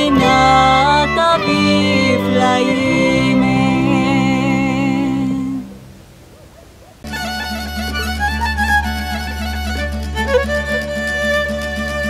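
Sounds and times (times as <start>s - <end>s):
folk fiddle music: 0.0s - 5.6s, 7.1s - 12.0s
folk band playing: 0.0s - 5.8s, 7.1s - 12.0s
woman singing with vibrato: 0.0s - 5.8s.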